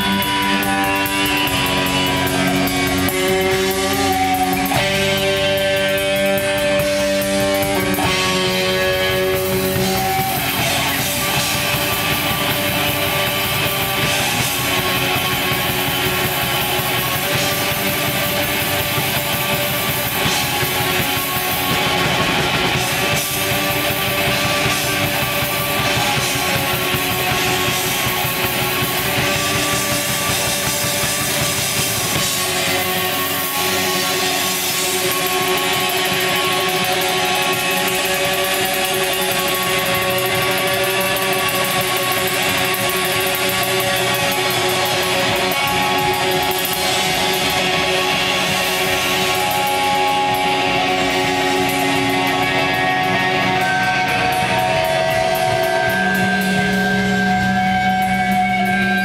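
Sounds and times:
distorted electric guitars: 0.0 - 59.0.

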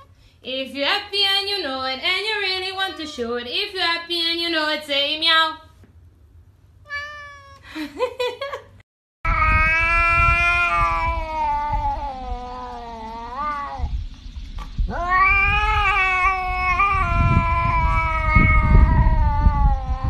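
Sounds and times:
cat yowling: 6.9 - 7.7, 9.3 - 13.9, 14.9 - 20.0.

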